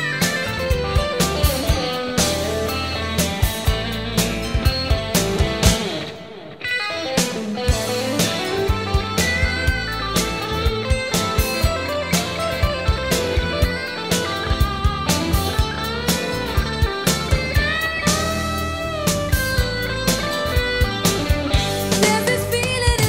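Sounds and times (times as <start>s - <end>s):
steady drum beat: 0.0s - 6.1s, 7.2s - 23.0s
bass: 0.0s - 6.2s, 7.2s - 23.0s
electric guitar lead: 0.0s - 23.0s.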